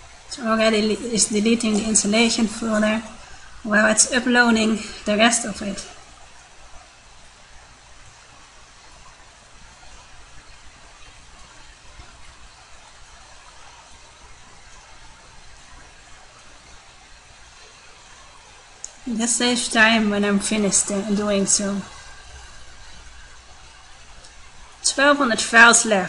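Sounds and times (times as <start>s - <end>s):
faint steady hiss: 0.0s - 26.0s
low hum: 0.0s - 26.0s.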